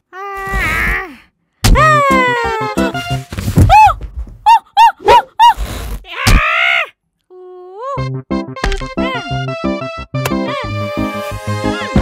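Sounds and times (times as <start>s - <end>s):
cartoon character groaning: 1.8s - 2.8s.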